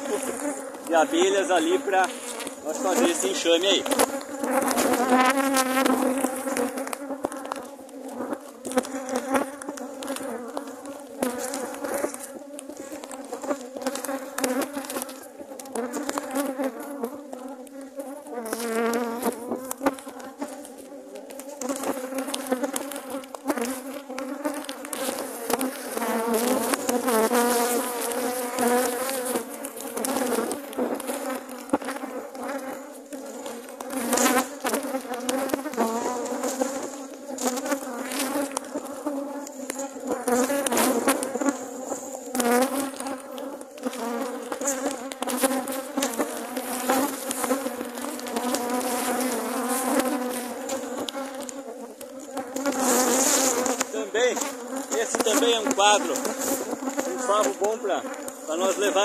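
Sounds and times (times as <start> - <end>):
bees buzzing: 0.0 - 59.0.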